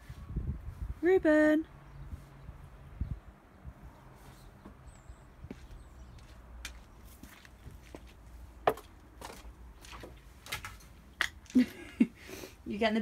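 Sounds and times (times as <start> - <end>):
footsteps on wood: 4.6 - 10.7.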